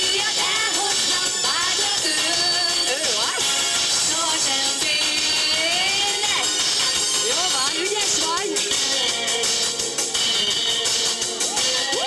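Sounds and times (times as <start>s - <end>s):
woman singing into a microphone: 0.0s - 3.4s, 4.1s - 9.7s, 11.5s - 12.0s
recorded backing track: 0.0s - 12.0s.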